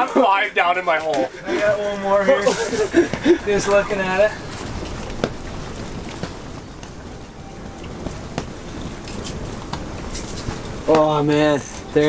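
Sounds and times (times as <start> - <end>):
clothing and gear rustle: 0.8 - 12.0.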